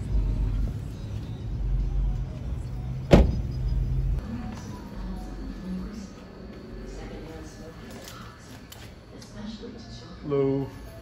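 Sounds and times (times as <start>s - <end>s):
car door slamming: 3.1s - 3.6s.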